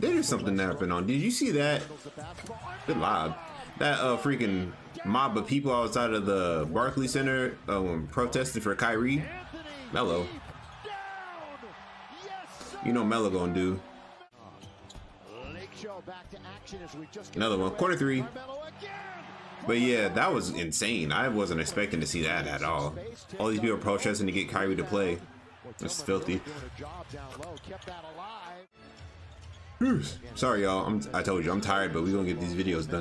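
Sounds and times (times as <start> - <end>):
commentator speaking: 0.0 - 10.5, 12.2 - 13.8, 19.6 - 28.7, 29.8 - 33.0
basketball game broadcast: 0.0 - 33.0.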